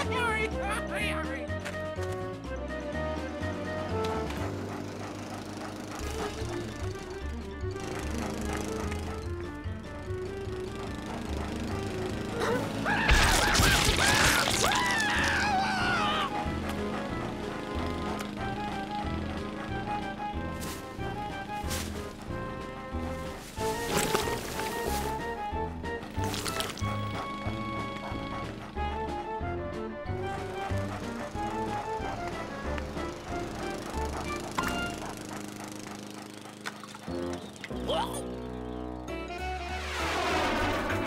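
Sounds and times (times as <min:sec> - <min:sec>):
bouncy cartoon music: 0:00.0 - 0:41.0.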